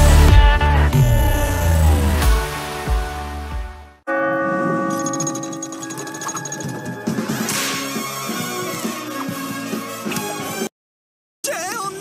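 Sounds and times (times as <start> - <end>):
bell ringing: 4.1 - 7.5.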